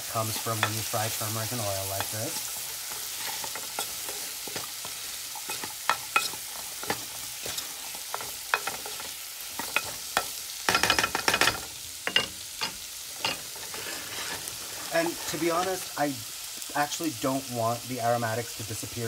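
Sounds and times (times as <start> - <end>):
vegetables sizzling in oil: 0.0 - 19.0
spatula scraping a pan: 0.1 - 15.9.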